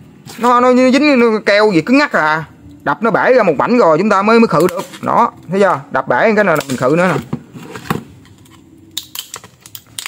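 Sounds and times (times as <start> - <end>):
plastic clicks and snaps: 8.3 - 10.0.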